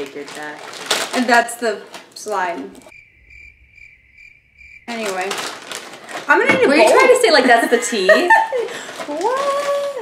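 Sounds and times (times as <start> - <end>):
crickets chirping: 2.8 - 6.4.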